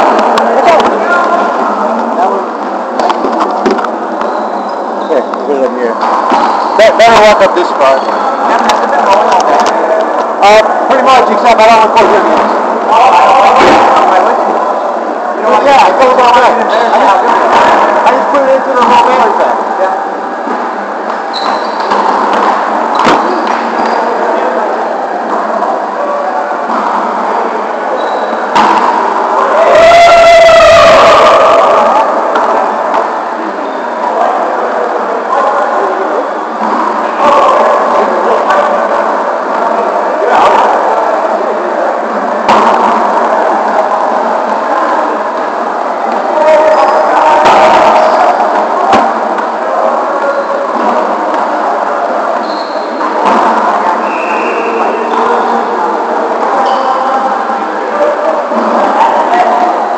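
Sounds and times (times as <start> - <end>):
volleyballs being hit and bouncing: 0.0 - 4.4, 5.2 - 11.1, 20.4 - 24.6, 25.2 - 29.5, 31.8 - 34.5, 42.0 - 57.0
overlapping voices in a gym: 0.0 - 59.9.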